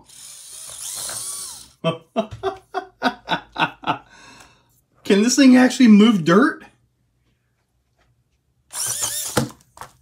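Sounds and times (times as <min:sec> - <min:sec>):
small electric motor whining: 0:00.0 - 0:01.8, 0:08.7 - 0:09.6.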